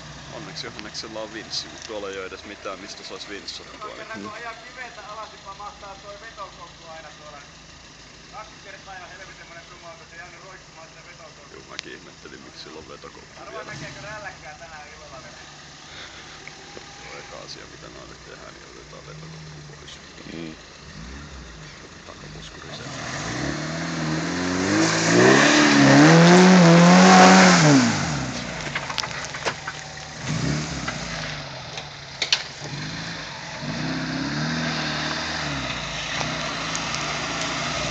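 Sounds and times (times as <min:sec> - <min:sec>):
engine running at low revs: 0:00.0 - 0:37.9.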